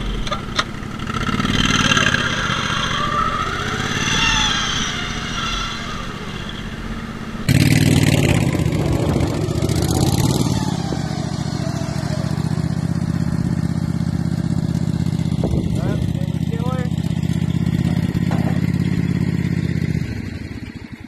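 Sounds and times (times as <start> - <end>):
small gasoline engines running: 0.0 - 21.0.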